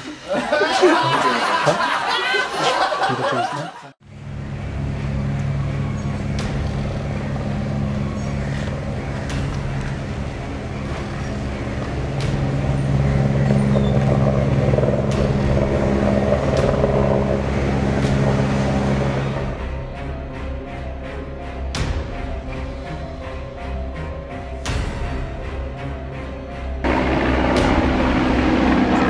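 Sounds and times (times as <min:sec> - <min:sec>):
low engine-like hum: 0:04.0 - 0:19.8, 0:26.8 - 0:29.0.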